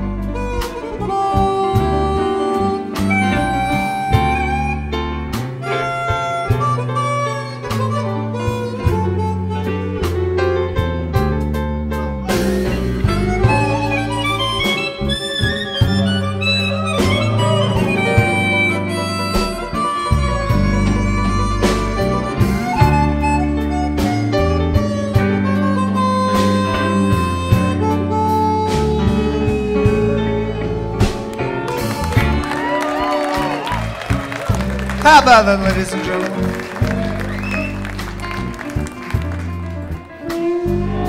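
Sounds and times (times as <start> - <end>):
harmonica solo with bending notes: 0.0 - 10.7, 12.2 - 41.0
live blues band: 0.0 - 41.0.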